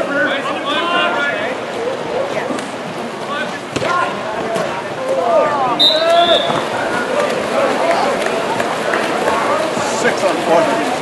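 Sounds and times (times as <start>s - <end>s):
water polo game splashing: 0.0s - 11.0s
players and spectators calling out: 3.3s - 11.0s.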